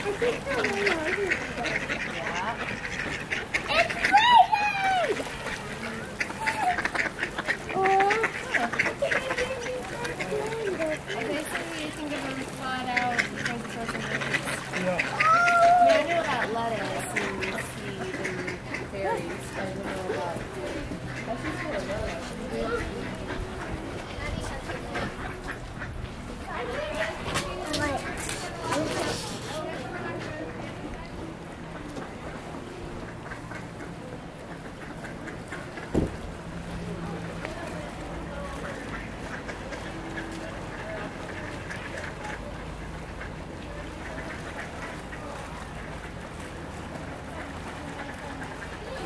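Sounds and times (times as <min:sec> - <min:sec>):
ducks quacking: 0:00.0 - 0:49.0.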